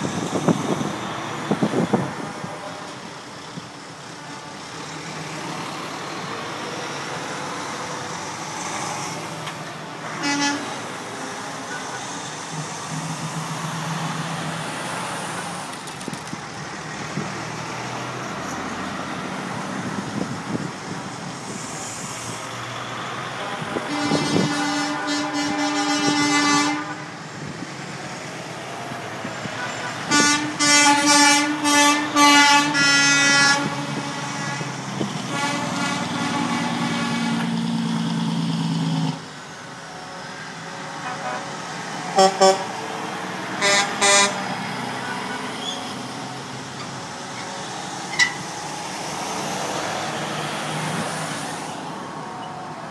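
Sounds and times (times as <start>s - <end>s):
diesel engines droning: 0.0s - 52.9s
truck air horns: 10.0s - 12.3s, 23.2s - 27.2s, 29.4s - 37.7s, 39.9s - 45.9s.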